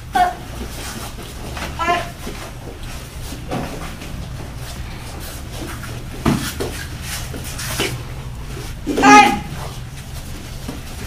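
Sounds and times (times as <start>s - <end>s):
steady low hum: 0.0s - 11.0s
thuds of strikes and footfalls: 6.2s - 6.8s.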